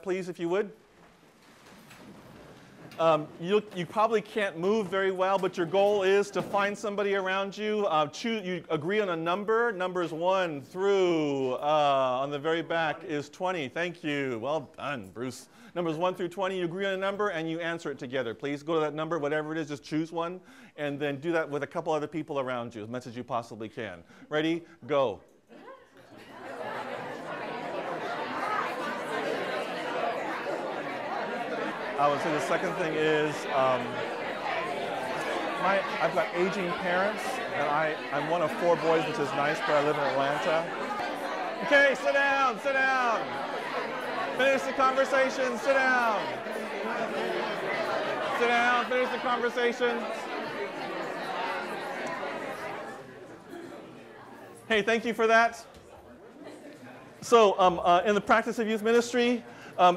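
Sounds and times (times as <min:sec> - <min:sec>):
crowd chatter in a hall: 0:00.0 - 0:59.9
murmur of overlapping voices: 0:24.0 - 0:59.9.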